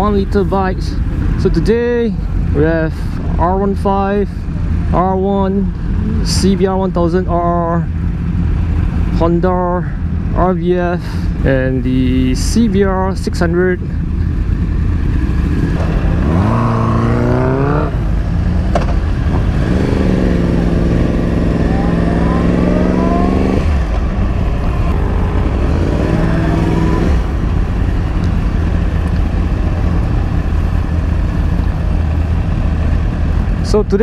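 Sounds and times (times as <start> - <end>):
wind and road noise: 0.0 - 34.0
motorcycle engine accelerating: 11.4 - 33.9.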